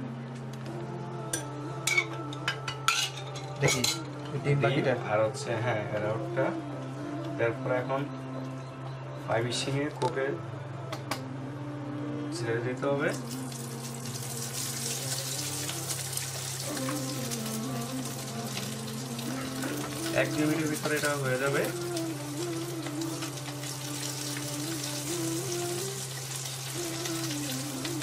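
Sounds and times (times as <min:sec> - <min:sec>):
metal utensils clinking on cookware: 0:01.9 - 0:04.1
hot oil sizzling and crackling: 0:13.1 - 0:28.0.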